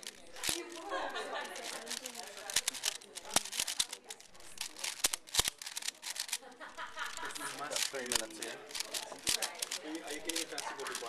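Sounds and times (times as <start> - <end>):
puzzle cube clicking as turned: 0.0 - 11.0.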